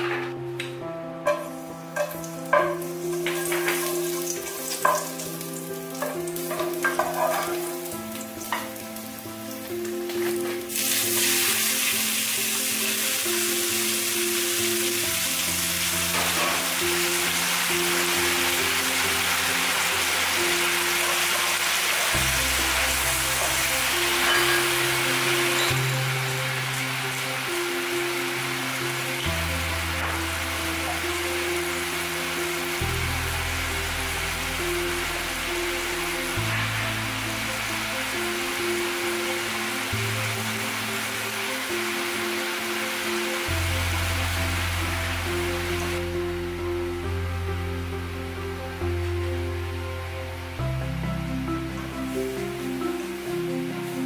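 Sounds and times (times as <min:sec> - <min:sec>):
background music: 0:00.0 - 0:54.0
garlic frying: 0:01.2 - 0:47.2, 0:51.4 - 0:54.0
loud sizzle in hot oil: 0:01.2 - 0:49.4, 0:51.0 - 0:54.0.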